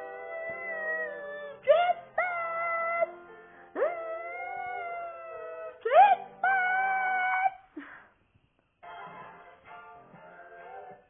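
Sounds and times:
pop music from television: 8.8s - 11.0s.

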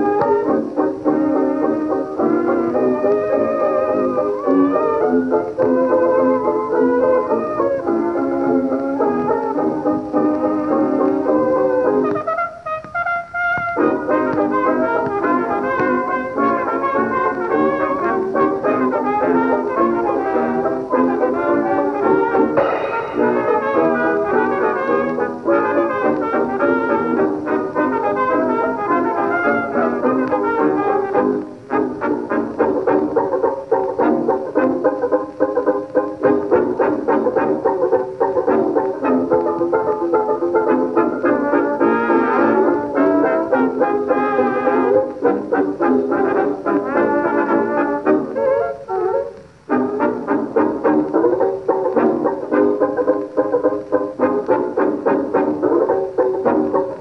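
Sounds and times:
old dance band recording: 0.0s - 57.0s.

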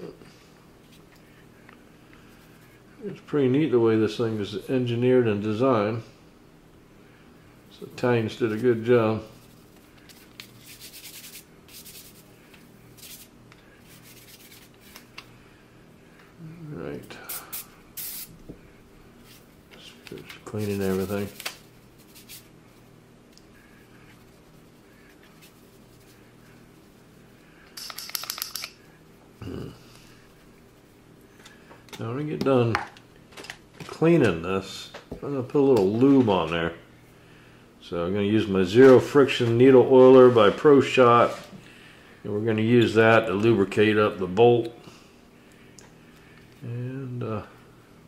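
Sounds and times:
cloth rubbing on metal: 9.3s - 12.4s, 13.0s - 15.0s, 20.4s - 22.9s, 23.6s - 27.1s
man speaking: 19.8s - 21.4s, 37.8s - 41.4s.

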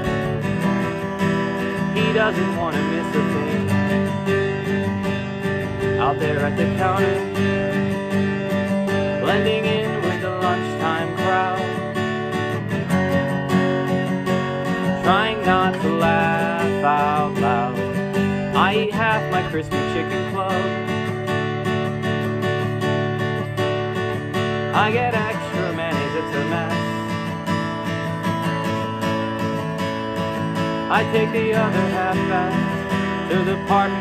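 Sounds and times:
man singing: 0.0s - 12.7s, 13.5s - 21.4s, 24.6s - 27.4s, 30.8s - 34.0s
acoustic guitar strumming: 0.0s - 34.0s.

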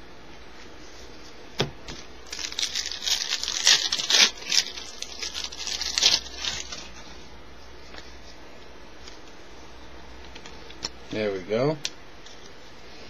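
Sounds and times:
wrapper torn open and crinkled: 2.2s - 7.0s.

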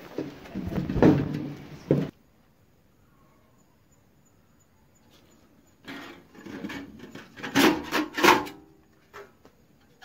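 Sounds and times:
sheet metal scrape: 5.8s - 8.6s.

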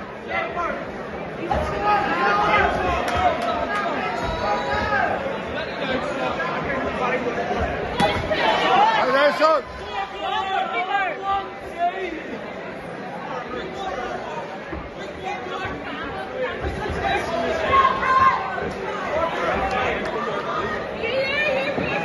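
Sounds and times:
crowd chattering and calling out: 0.0s - 22.0s.

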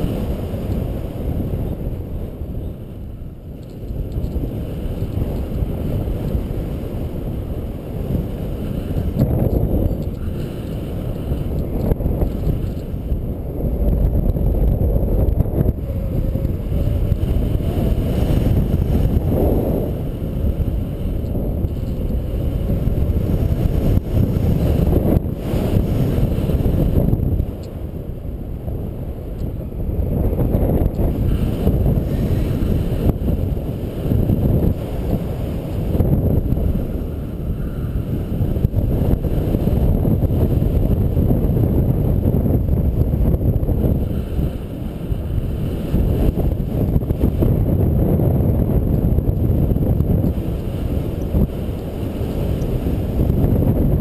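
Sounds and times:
wind rumbling over microphone: 0.0s - 54.0s.

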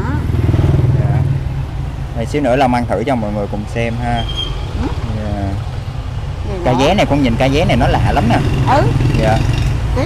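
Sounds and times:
motorbike engine running: 0.0s - 10.0s.

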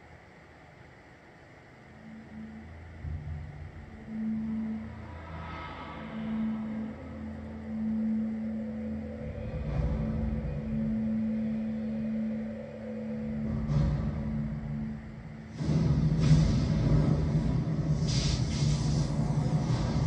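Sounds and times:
low droning tone: 0.0s - 20.0s
low rumble: 2.0s - 20.0s.

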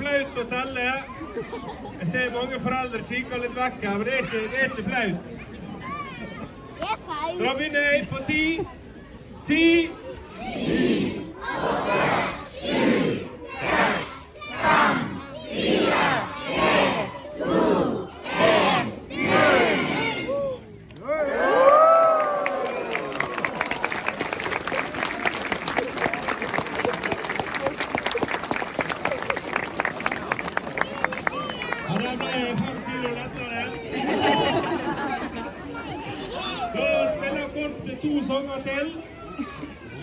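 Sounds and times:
crowd chanting a countdown: 10.4s - 20.3s
crowd cheering: 16.6s - 37.4s
applause: 21.7s - 33.8s.

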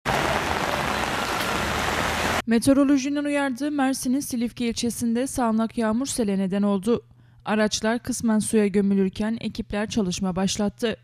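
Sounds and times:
heavy rain on flooded street: 0.1s - 2.4s.

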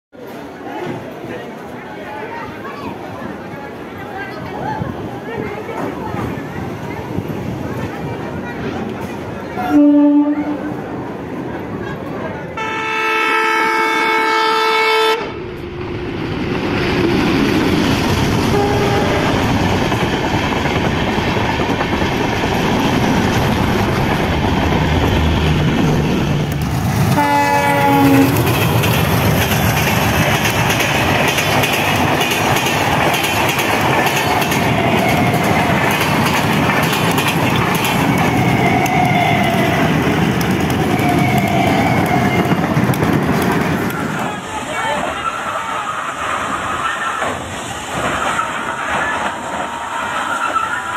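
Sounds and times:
train horn: 9.6s - 10.8s, 12.6s - 15.3s, 18.5s - 19.4s, 27.1s - 28.4s
train wheels clattering on rail: 16.3s - 45.2s, 46.0s - 50.9s.

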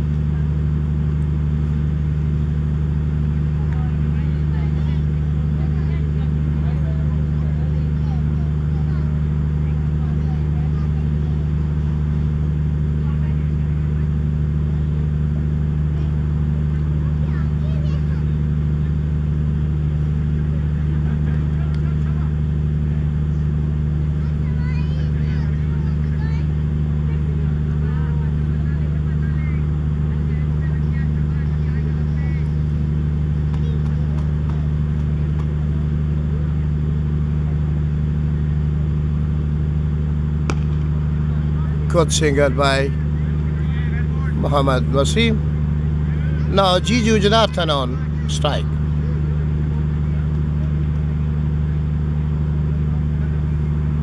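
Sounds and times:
faint distant voices: 0.0s - 54.0s
low mechanical hum: 0.0s - 54.0s.

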